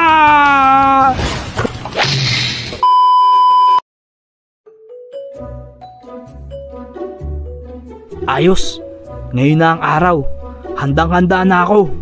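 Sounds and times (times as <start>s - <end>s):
light music: 4.7s - 12.0s.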